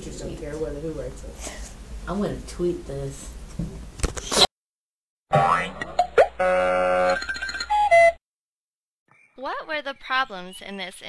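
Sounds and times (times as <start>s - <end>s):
cartoon springy boing: 5.3s - 7.5s.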